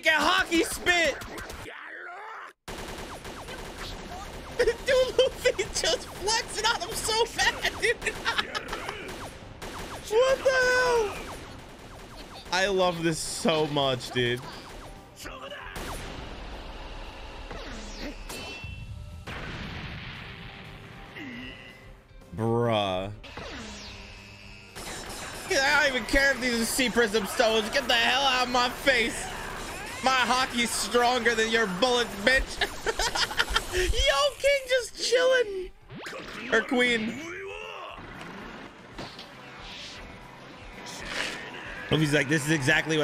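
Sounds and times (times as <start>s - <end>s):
dramatic background music: 2.8s - 33.8s
battle sound effects: 23.2s - 33.9s.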